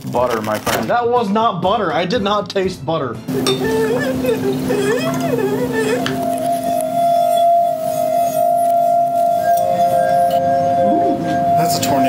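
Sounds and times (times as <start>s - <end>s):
lower wine glass tone: 3.3s - 12.0s
wine glass ringing tone: 3.3s - 12.0s.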